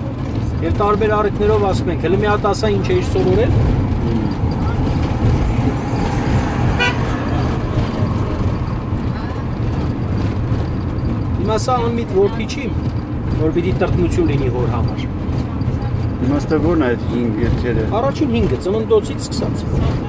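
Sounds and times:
car engine and tyres rumbling: 0.0s - 20.0s
car horn toot: 6.7s - 7.4s.

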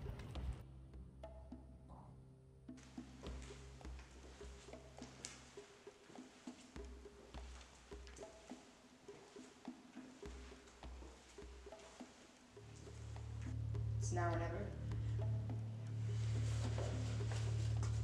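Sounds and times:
low bass pulses: 12.6s - 18.0s.

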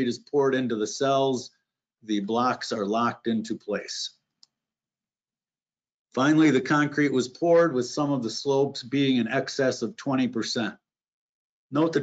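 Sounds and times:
person speaking: 0.0s - 1.5s, 2.1s - 4.2s, 6.2s - 10.8s, 11.7s - 12.0s.

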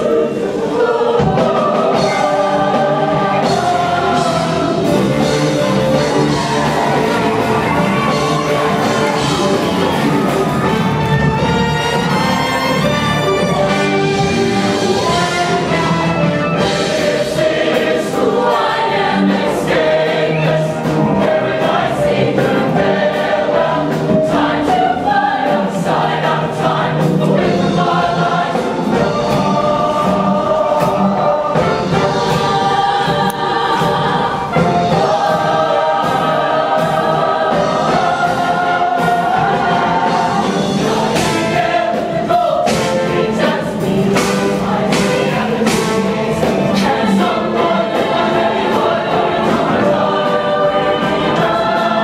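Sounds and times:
drums keeping a steady beat: 0.0s - 52.0s
live band: 0.0s - 52.0s
mixed choir singing in harmony: 0.0s - 52.0s.

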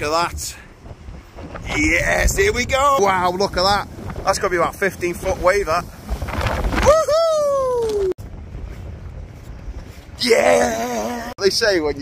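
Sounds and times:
wind buffeting microphone: 0.0s - 12.0s
wave crashing on concrete: 0.8s - 7.1s.

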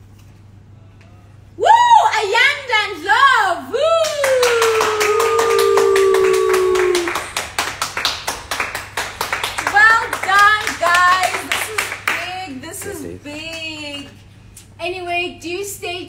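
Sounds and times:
woman clapping hands: 4.0s - 13.7s.

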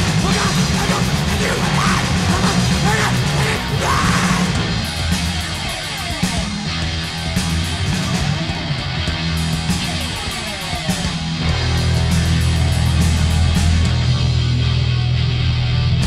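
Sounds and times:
punk rock with distorted guitars: 0.0s - 16.0s.

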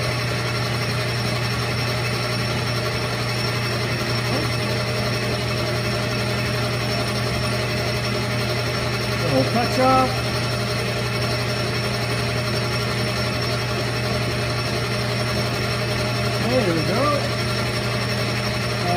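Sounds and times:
metal lathe running: 0.0s - 18.9s.

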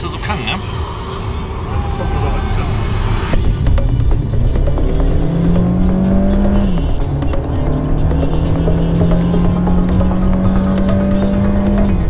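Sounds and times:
car engine rumble: 0.0s - 12.0s
tyre road noise: 0.0s - 12.0s.

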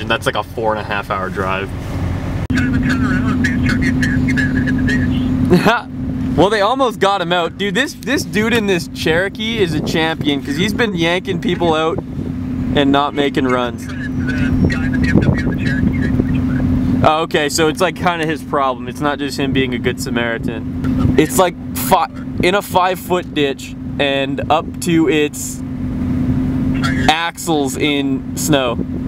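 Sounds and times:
high whine: 0.0s - 28.7s
heavy low rumble: 0.0s - 29.0s
vehicle engine running: 0.0s - 29.0s
faint voices: 2.5s - 5.5s, 12.8s - 16.7s, 26.8s - 27.2s.

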